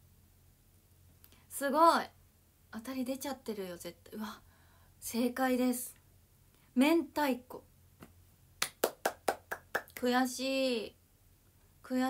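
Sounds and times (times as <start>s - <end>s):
hands clapping: 8.0s - 10.1s.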